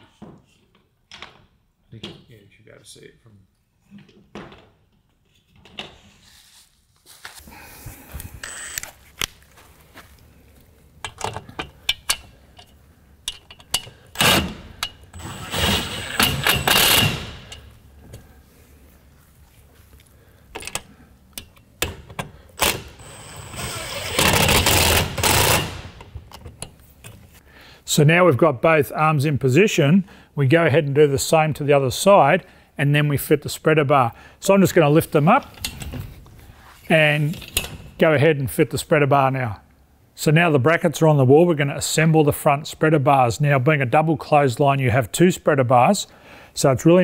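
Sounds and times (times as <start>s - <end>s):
metal arms clicking and knocking: 11.0s - 17.7s
impact driver running: 22.7s - 26.0s.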